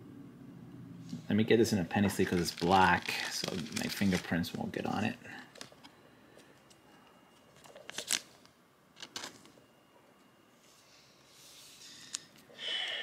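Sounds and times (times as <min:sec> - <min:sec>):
plastic sleeve crinkling: 0:01.8 - 0:05.9, 0:07.4 - 0:09.6.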